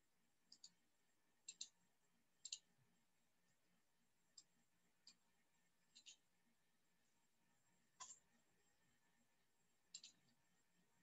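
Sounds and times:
computer mouse double-clicks: 1.5 - 1.8, 5.9 - 6.2, 9.9 - 10.3.

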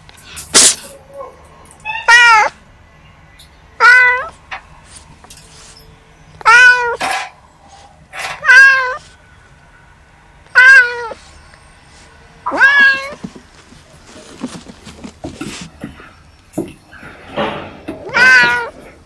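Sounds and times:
kittens meowing: 1.7 - 2.6, 3.8 - 4.4, 6.4 - 9.2, 10.5 - 11.2, 12.4 - 13.3, 17.9 - 19.0
knocks and scuffles of play: 12.6 - 18.6.

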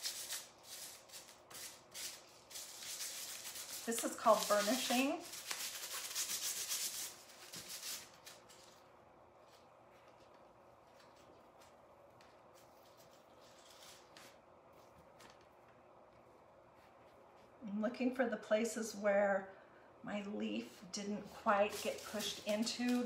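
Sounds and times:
tissue paper rubbing on metal leaf: 0.0 - 8.6, 21.2 - 23.0.

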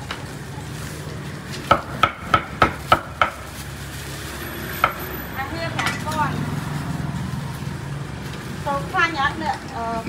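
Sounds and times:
cleaver chopping on wooden board: 1.7 - 3.4.

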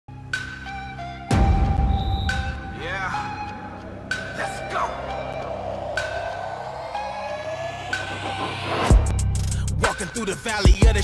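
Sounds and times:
rising siren-like tone: 1.4 - 9.1
steady high synth tone: 1.8 - 9.1.

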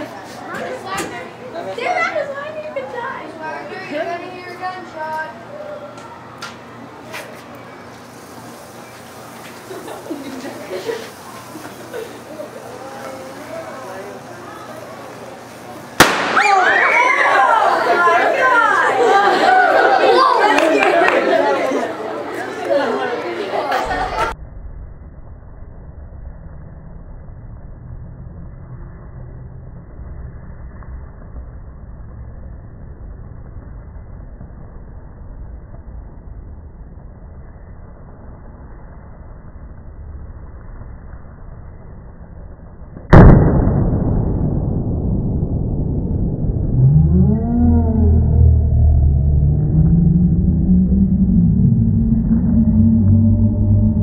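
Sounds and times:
sudden loud bang: 16.0 - 16.8, 43.1 - 47.3.

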